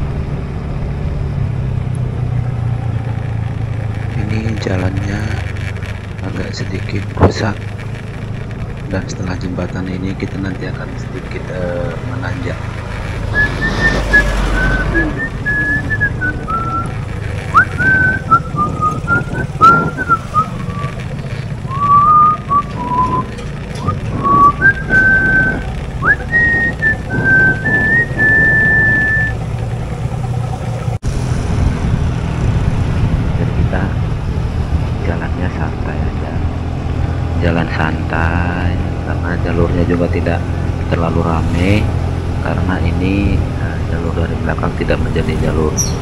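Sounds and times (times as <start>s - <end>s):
motorcycle riding rumble: 0.0s - 46.0s
person whistling: 13.3s - 20.9s, 21.7s - 29.4s.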